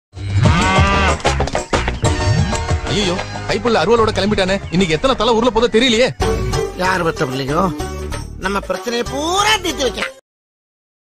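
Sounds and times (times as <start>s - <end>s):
cow mooing: 0.2s - 1.2s
background music: 0.2s - 10.2s.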